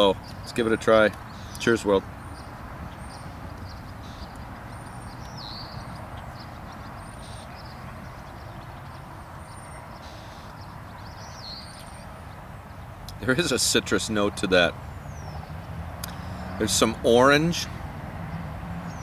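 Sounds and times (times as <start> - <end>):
wild birds chirping: 0.0 - 19.0.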